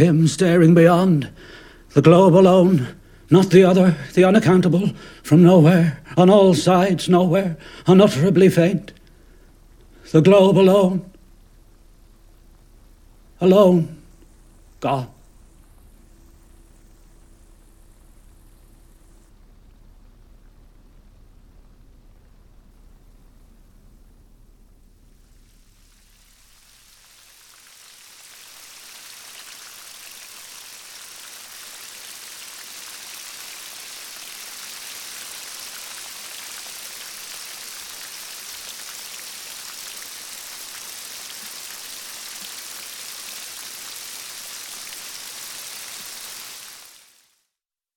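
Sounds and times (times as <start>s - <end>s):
steady rain falling: 0.0s - 47.6s.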